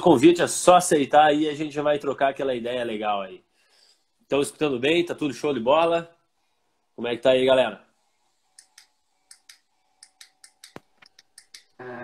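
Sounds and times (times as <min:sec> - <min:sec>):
light irregular clicks: 0:08.5 - 0:11.8.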